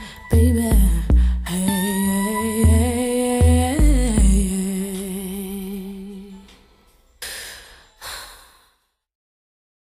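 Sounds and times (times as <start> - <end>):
breathy sighs: 7.2 - 8.9.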